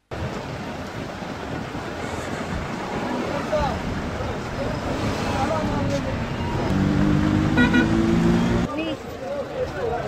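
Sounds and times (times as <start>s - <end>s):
people talking: 2.9s - 6.8s, 8.5s - 10.0s
vehicle horn: 7.5s - 8.2s.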